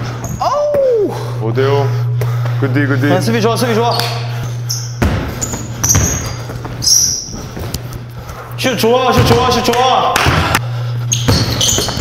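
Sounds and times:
sneakers squeaking on court: 0:03.8 - 0:09.6, 0:11.0 - 0:12.0
basketball bouncing on gym floor: 0:04.7 - 0:07.8, 0:09.0 - 0:12.0.

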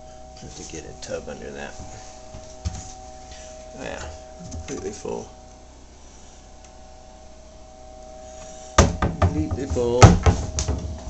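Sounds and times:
faint hum and hiss: 0:00.0 - 0:11.0.

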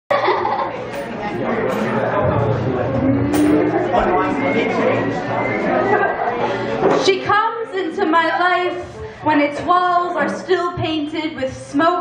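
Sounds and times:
indistinct voices talking: 0:00.8 - 0:06.3.

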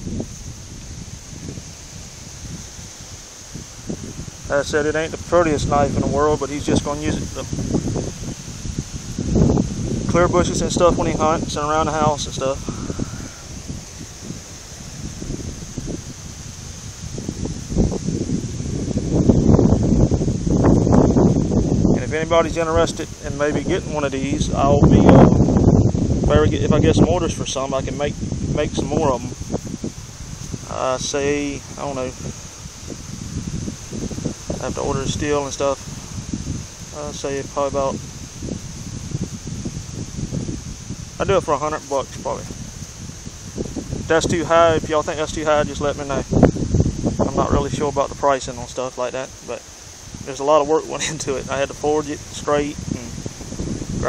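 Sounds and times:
steady high hiss: 0:00.0 - 0:54.0
wind buffeting microphone: 0:00.0 - 0:54.0.

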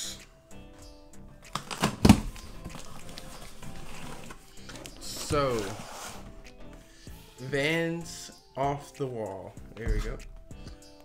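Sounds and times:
quiet background music: 0:00.0 - 0:11.0
cardboard flaps rustling: 0:01.5 - 0:06.4.

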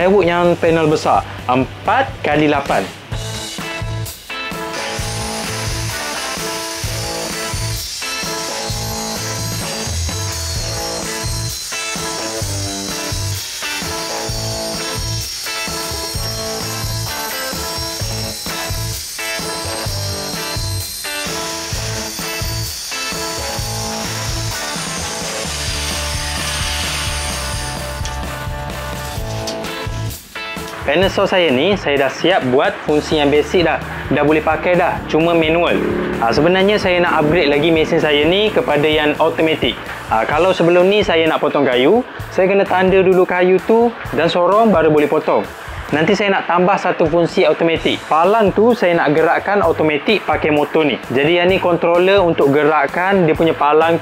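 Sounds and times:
background music: 0:00.0 - 0:54.0
circular saw cutting plywood: 0:04.7 - 0:30.2, 0:32.3 - 0:41.0.

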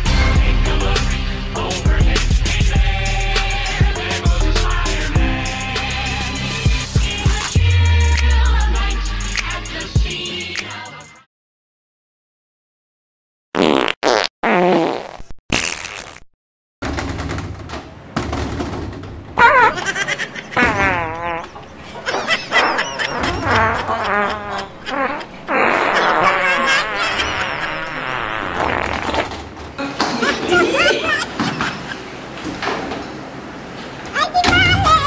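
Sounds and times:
comedy fart sounds: 0:13.6 - 0:16.3, 0:20.6 - 0:29.5.

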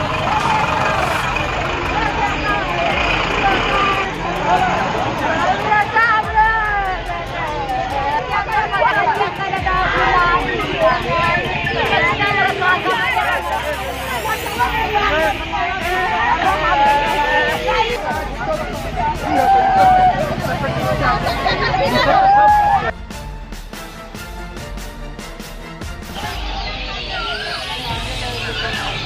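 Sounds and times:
van engine running: 0:00.0 - 0:05.7
people talking: 0:00.0 - 0:22.9, 0:26.2 - 0:29.0.

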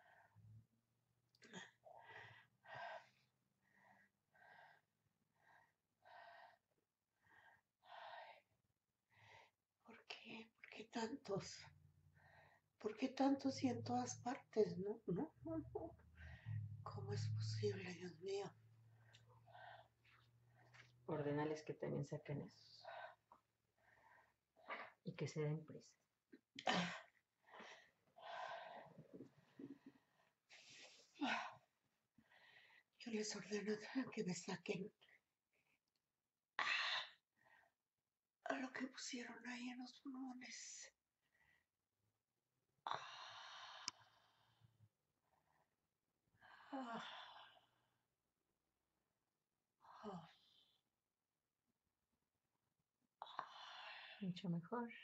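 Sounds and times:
person breathing: 0:16.1 - 0:16.8.

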